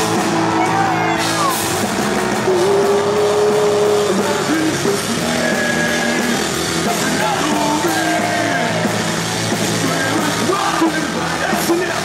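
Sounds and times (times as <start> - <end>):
bass guitar: 0.0 - 12.0
distorted electric guitar: 0.0 - 12.0
drums: 0.0 - 12.0.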